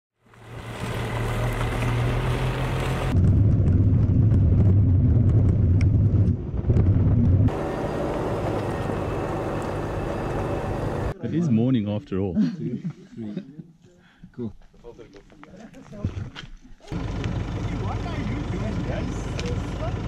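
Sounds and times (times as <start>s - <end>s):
moving vehicle rumble: 0.2s - 11.2s, 16.0s - 20.0s.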